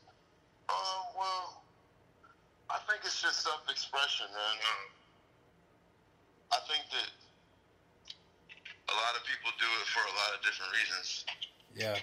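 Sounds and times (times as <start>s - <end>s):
man speaking over a phone: 0.7s - 1.6s, 2.7s - 5.0s, 6.5s - 7.2s, 8.7s - 12.0s.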